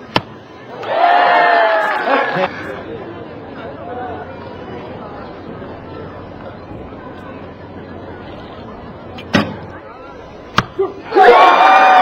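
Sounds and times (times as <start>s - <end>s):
crowd shouting and cheering: 0.3s - 3.0s, 10.7s - 12.0s.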